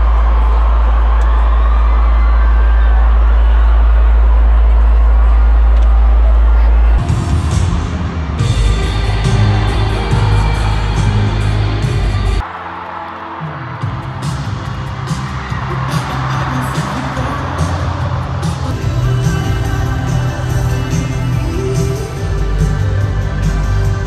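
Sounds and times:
crowd noise: 0.0 - 24.0
loud amplified pop music with singing: 0.0 - 24.0.

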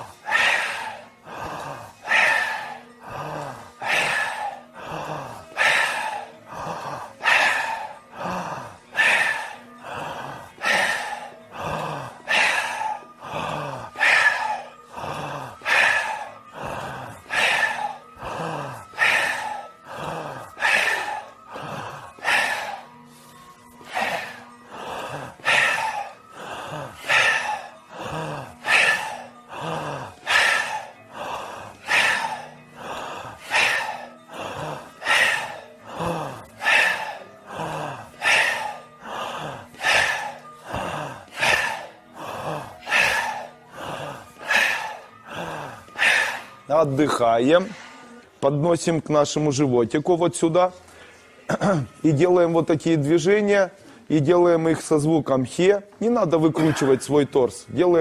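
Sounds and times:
group breathing out forcefully: 0.0 - 46.7.

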